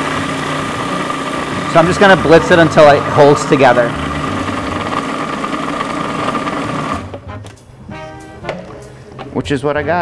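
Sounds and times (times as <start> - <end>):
food processor motor running: 0.0 - 7.2.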